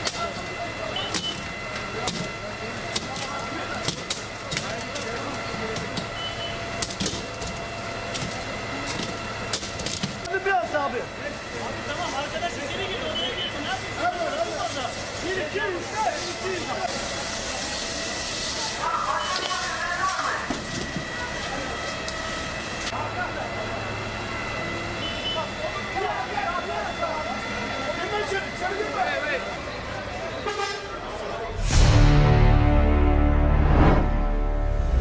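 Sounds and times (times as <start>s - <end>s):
voices: 0.0s - 31.7s.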